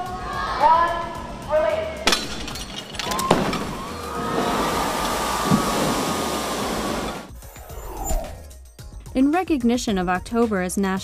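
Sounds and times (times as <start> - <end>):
water spray rushing: 3.3 - 7.3.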